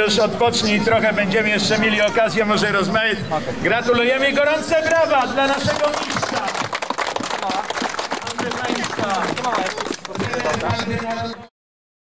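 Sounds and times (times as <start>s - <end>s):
crowd voices: 0.0s - 11.5s
crowd clapping: 5.5s - 11.5s.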